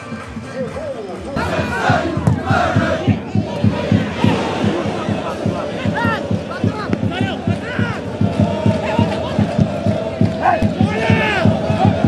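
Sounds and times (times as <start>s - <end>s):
stadium crowd noise: 0.0s - 12.0s
fast low beat: 1.4s - 12.0s.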